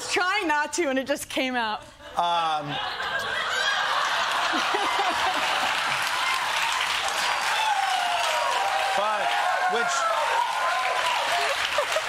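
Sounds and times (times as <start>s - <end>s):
audience laughing: 2.1s - 6.2s, 11.4s - 12.0s
audience applauding: 3.5s - 12.0s.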